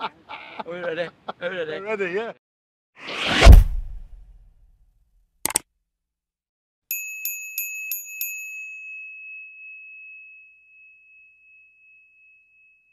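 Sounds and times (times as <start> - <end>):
small bell ringing: 6.9 - 12.9.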